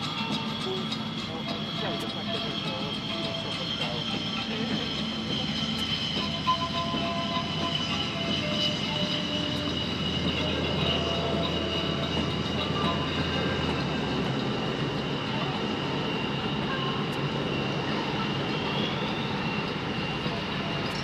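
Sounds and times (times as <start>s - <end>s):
jet engine rumble: 0.0s - 21.0s
jet turbine whine: 0.0s - 21.0s.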